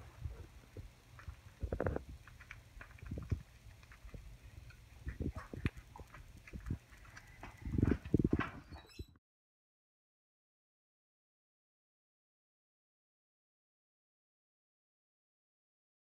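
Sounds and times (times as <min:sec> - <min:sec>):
low steady hum: 0:00.0 - 0:08.9.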